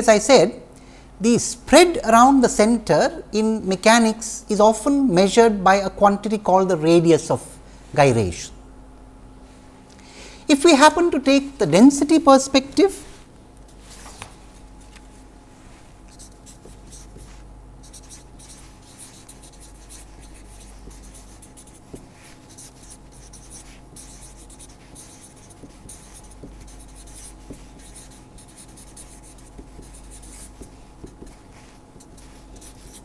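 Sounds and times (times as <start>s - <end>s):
marker pen writing on paper: 13.7s - 33.0s.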